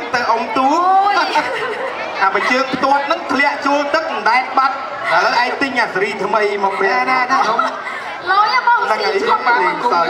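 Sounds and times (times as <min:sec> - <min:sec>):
people talking into microphones: 0:00.0 - 0:10.0.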